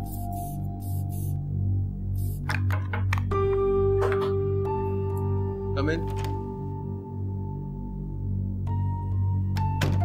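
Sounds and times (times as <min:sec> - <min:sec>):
soft ambient music: 0:00.0 - 0:10.0.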